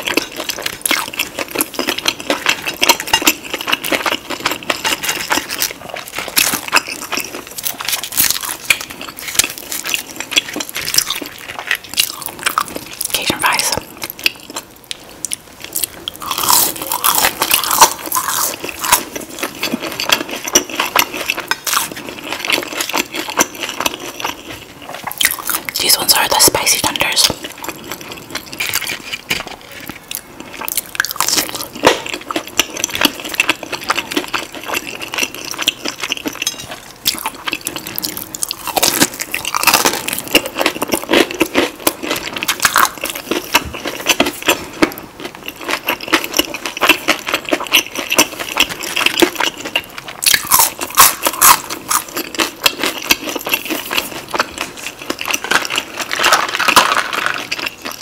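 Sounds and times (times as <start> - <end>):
crunching and chewing fried chicken: 0.0 - 58.0.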